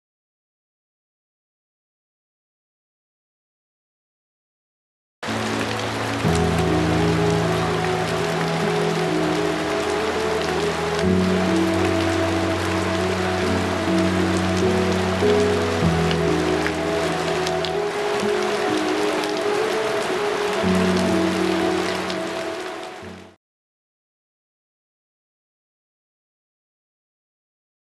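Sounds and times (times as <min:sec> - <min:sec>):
slow sustained chords: 0:05.2 - 0:23.3
steady rain falling: 0:05.2 - 0:23.4.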